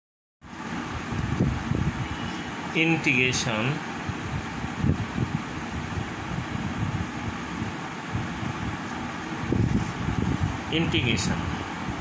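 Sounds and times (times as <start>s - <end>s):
steady rushing fan noise: 0.4s - 12.0s.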